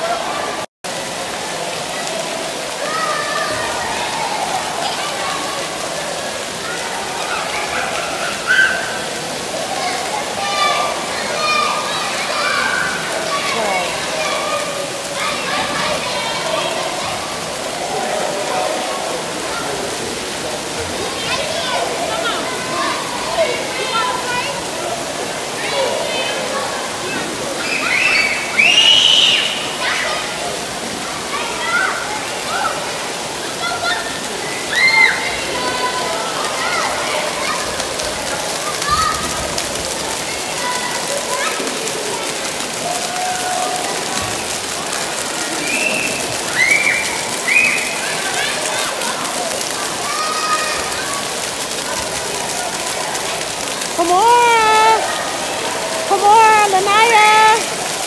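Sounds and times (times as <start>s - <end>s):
water jets spraying into pool: 0.0s - 58.0s
children shouting and squealing: 1.9s - 20.0s, 21.0s - 58.0s.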